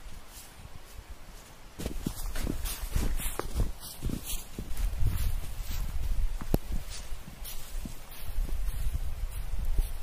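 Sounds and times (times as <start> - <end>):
footsteps crunching through snow: 0.0 - 10.0.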